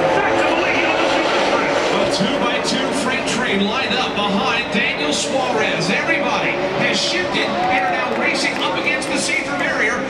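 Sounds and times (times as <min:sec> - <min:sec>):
man commentating over speaker: 0:00.0 - 0:10.0
race car engines droning: 0:00.0 - 0:10.0.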